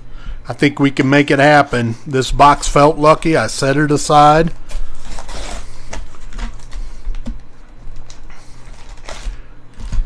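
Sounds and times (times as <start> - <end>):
steady low hum: 0.0 - 10.0
foil packs crinkling: 4.5 - 10.0.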